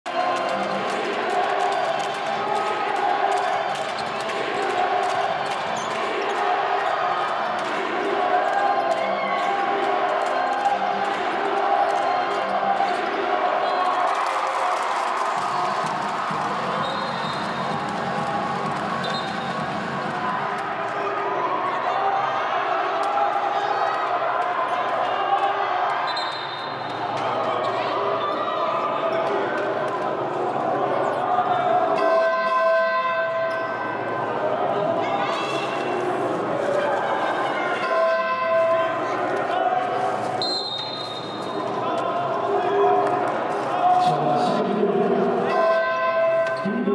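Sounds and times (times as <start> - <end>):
voices in a hall: 0.1 - 46.9
basketballs bouncing: 15.3 - 20.3
people talking: 46.6 - 46.9.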